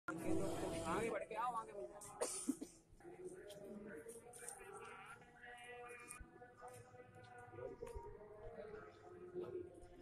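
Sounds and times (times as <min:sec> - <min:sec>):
faint background voices: 0:00.1 - 0:10.0
person coughing: 0:02.2 - 0:02.8.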